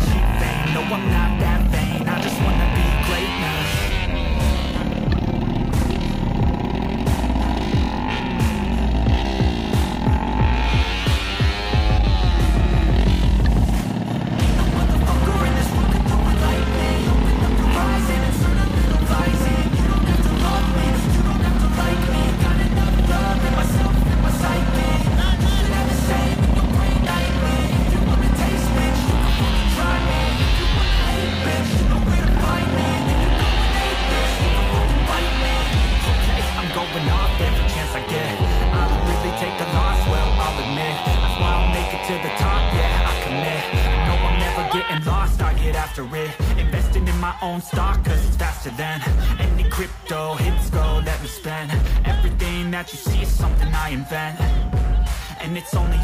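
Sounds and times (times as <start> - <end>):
background music with beat: 0.0 - 56.0
motorcycles revving: 0.0 - 56.0.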